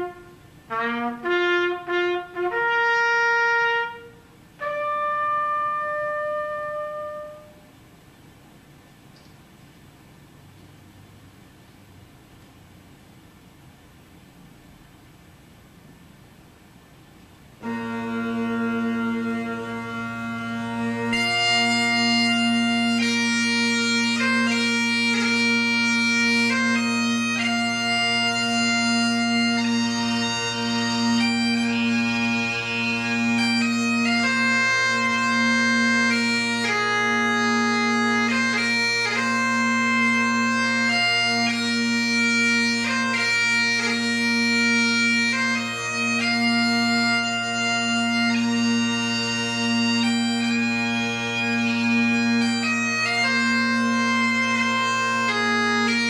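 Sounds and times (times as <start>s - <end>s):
bagpipe drones: 0.0s - 7.6s, 17.6s - 56.0s
bagpipe chanter melody: 0.0s - 7.7s, 17.6s - 56.0s.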